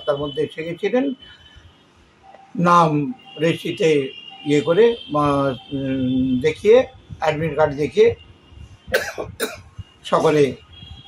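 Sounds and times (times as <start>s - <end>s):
man coughing: 8.9s - 9.7s.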